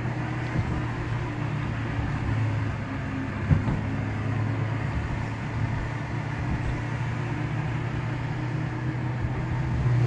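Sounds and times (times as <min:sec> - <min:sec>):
car engine drone: 0:00.0 - 0:10.0
tyres on road: 0:00.0 - 0:10.0
short thump: 0:03.4 - 0:03.9.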